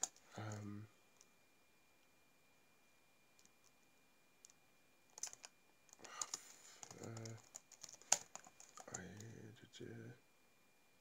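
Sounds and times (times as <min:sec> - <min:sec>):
keyboard typing and clicking: 0:00.0 - 0:00.6, 0:04.4 - 0:09.4.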